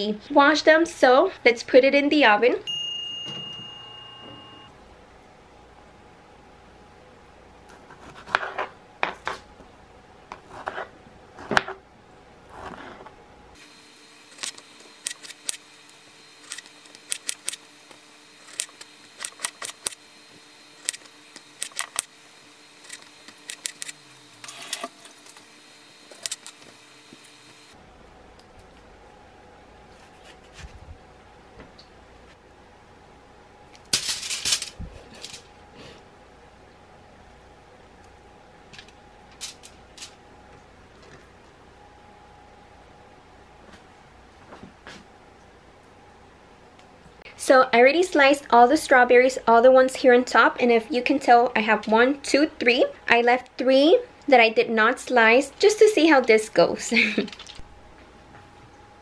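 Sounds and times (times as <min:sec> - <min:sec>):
background hum: 0:00.0 - 0:59.0.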